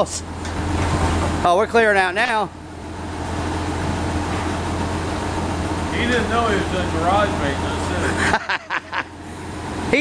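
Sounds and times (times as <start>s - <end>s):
engine running low hum: 0.0s - 10.0s.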